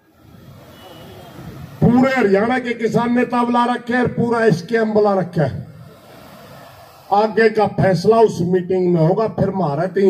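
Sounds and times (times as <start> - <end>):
man speaking over loudspeakers: 1.8 - 5.7, 7.1 - 10.0.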